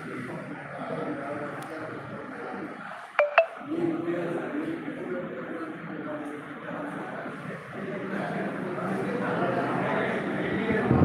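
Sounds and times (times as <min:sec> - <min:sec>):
murmur of voices: 0:00.0 - 0:11.0
quick electronic beeps: 0:03.2 - 0:03.6.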